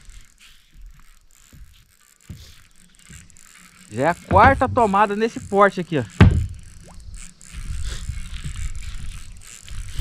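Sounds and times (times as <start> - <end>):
faint fishing reel mechanism: 0.0 - 10.0.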